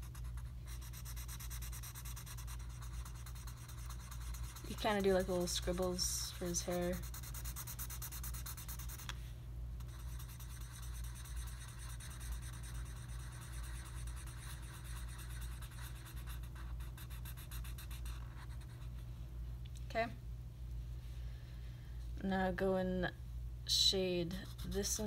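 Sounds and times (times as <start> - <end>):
marker scribbling on paper: 0.0 - 9.1, 9.8 - 19.0, 24.4 - 25.0.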